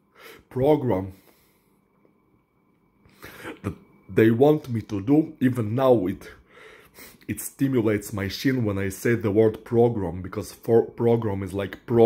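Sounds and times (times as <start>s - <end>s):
man clearing throat: 3.2s - 3.8s.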